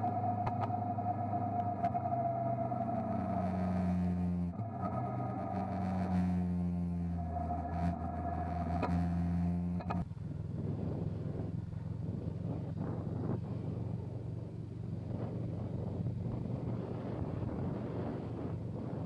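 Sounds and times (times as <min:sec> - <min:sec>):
motorcycle engine running: 0:02.0 - 0:19.0.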